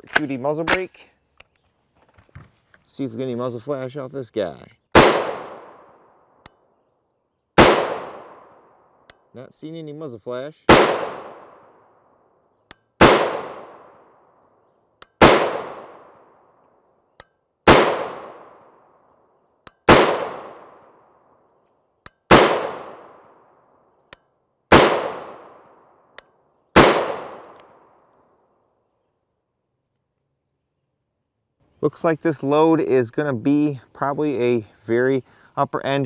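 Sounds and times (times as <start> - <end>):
rifle shots with echo: 4.9 - 6.4, 7.6 - 9.1, 10.7 - 12.1, 13.0 - 14.4, 15.2 - 16.4, 17.6 - 19.0, 19.8 - 21.2, 22.3 - 23.6, 24.7 - 26.1, 26.7 - 28.1.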